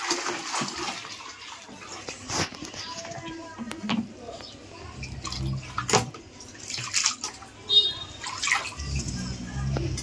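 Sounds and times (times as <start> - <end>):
water pouring into a tub: 0.0 - 2.8, 5.0 - 10.0.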